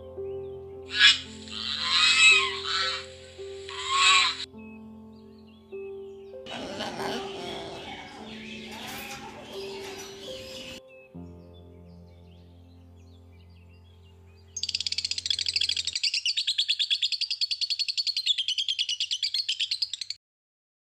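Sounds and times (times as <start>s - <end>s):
held musical chord: 0.0s - 14.6s
bird trilling chirps: 0.9s - 11.1s, 14.4s - 20.2s.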